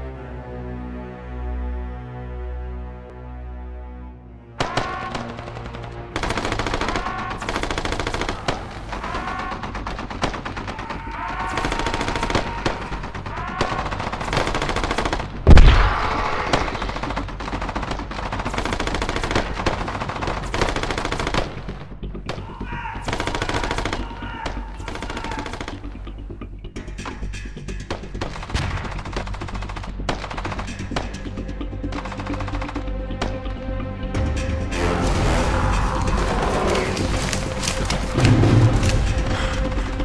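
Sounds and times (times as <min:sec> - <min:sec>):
automatic gunfire bursts: 0:04.6 - 0:10.8, 0:13.6 - 0:21.8, 0:23.1 - 0:24.2
loud deep explosion: 0:15.5 - 0:16.6, 0:38.1 - 0:39.7.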